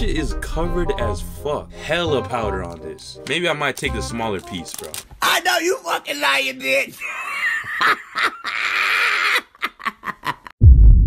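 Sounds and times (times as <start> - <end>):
man laughing screechily: 7.0 - 10.5
loud low rumble: 10.6 - 11.0.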